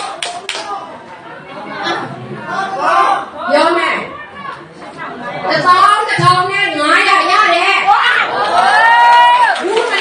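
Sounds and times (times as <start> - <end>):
audience chatter: 0.0 - 10.0.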